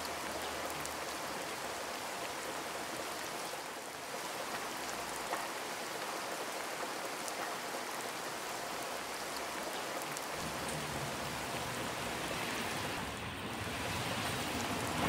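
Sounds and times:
steady rain falling: 0.0s - 15.0s.

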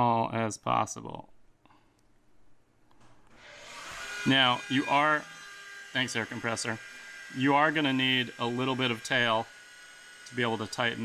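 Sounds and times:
air compressor motor: 3.3s - 11.0s.

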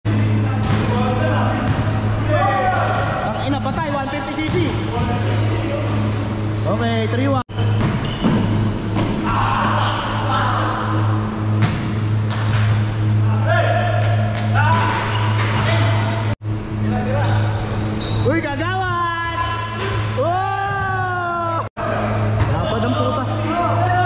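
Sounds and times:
steady low hum: 0.1s - 15.0s, 15.6s - 20.2s
players shouting: 2.2s - 3.3s, 9.2s - 10.9s
shoe squeaks: 7.5s - 11.5s, 12.4s - 13.5s, 14.7s - 15.8s, 17.2s - 18.3s.

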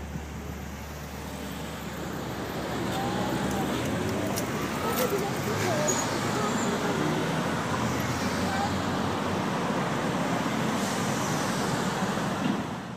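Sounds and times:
cars driving past: 0.0s - 12.9s.

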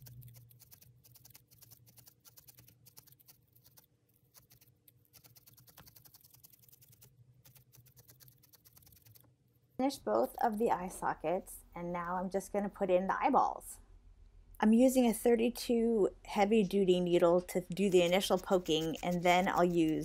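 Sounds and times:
felting needle poking wool: 0.0s - 9.4s, 17.7s - 20.0s.

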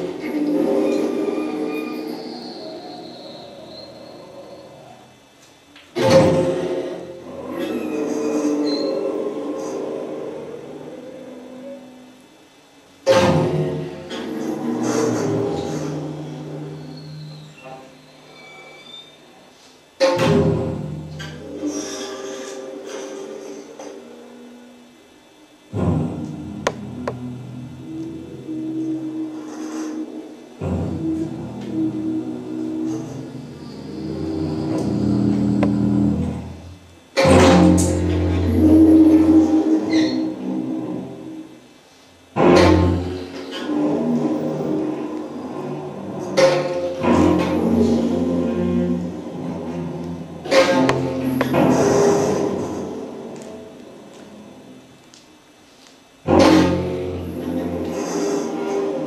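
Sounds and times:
string quartet sustained tones: 42.4s - 54.6s.

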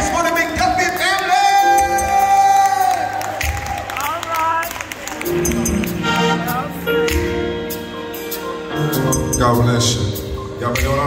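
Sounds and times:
drums: 0.0s - 6.0s, 6.6s - 11.0s
crowd cheering: 0.0s - 6.9s
live band playing: 0.0s - 11.0s.

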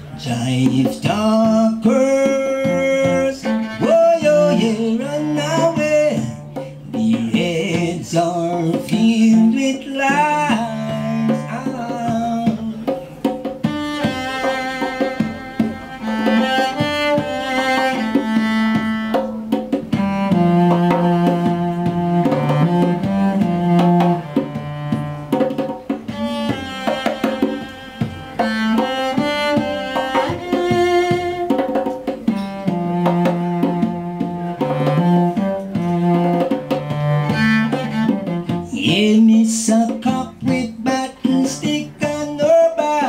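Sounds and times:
hand drum beat: 0.0s - 43.0s
cello bowed notes: 0.3s - 39.1s.

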